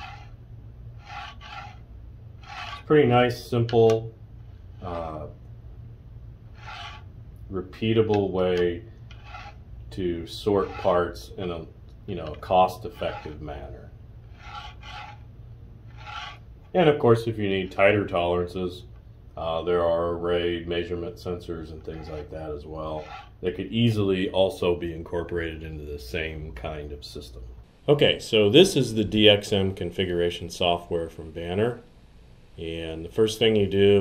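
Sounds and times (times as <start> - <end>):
plastic part scraping on plate: 0.0 - 0.3, 1.0 - 1.8, 2.4 - 2.9, 6.5 - 7.1, 9.0 - 9.6, 14.3 - 15.3, 15.9 - 16.4, 23.0 - 23.4
low steady hum: 0.0 - 34.0.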